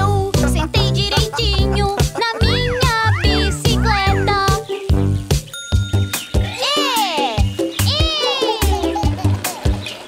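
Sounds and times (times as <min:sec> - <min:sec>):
upbeat cartoon music: 0:00.0 - 0:10.0.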